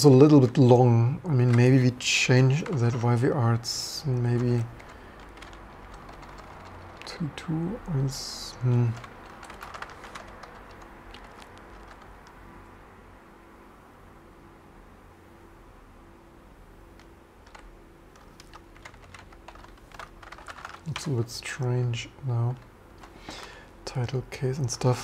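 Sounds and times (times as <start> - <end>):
computer keyboard typing: 1.3 - 12.4, 17.0 - 21.7.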